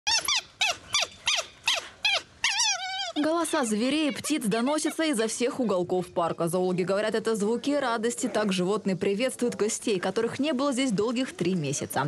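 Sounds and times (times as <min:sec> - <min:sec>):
high-pitched canid yelps: 0:00.1 - 0:05.1.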